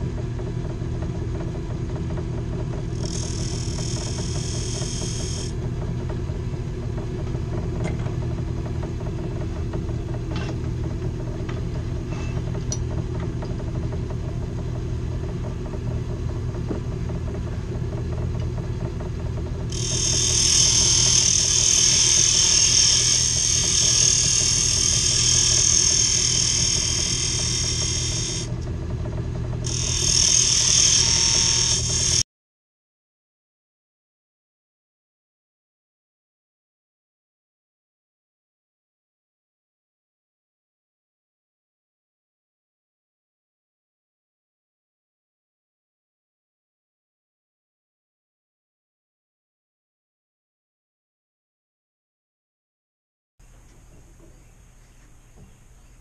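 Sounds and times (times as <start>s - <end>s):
lathe motor hum: 0.0s - 32.2s.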